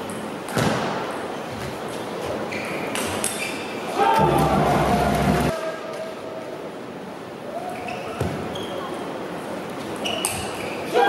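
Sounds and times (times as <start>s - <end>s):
shoes squeaking on floor: 1.4s - 3.8s, 7.8s - 8.9s, 9.8s - 10.9s.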